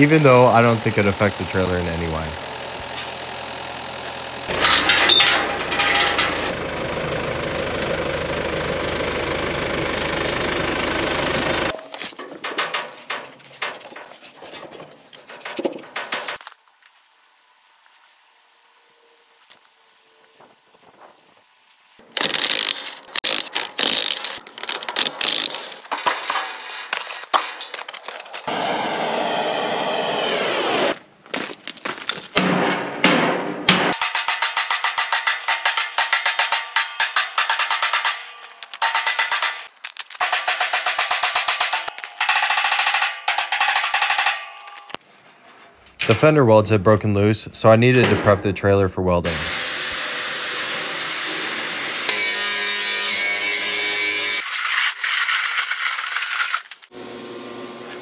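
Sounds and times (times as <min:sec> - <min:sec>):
steady running noise: 0:00.0 - 0:11.7
impact wrench hammering: 0:32.4 - 0:45.0.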